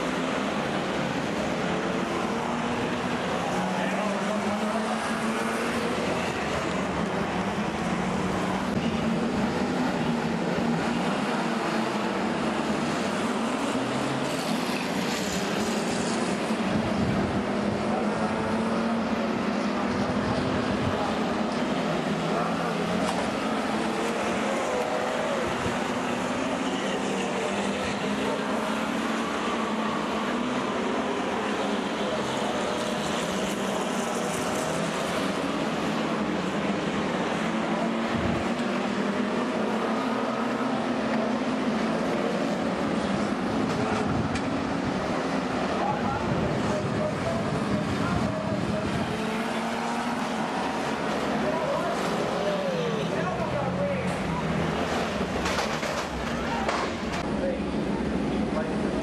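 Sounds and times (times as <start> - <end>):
stockcar engines racing: 0.0 - 59.0.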